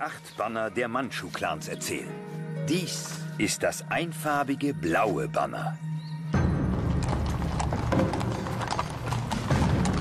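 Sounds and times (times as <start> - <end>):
horse hooves clip-clopping: 6.6 - 10.0.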